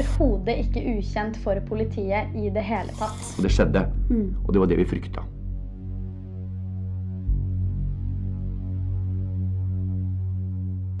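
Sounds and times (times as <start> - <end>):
low electronic drone: 0.0 - 11.0.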